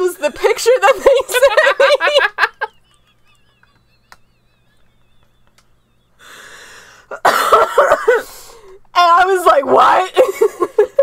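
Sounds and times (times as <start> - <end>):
woman laughing: 0.3 - 6.5, 7.1 - 8.4, 10.1 - 11.0.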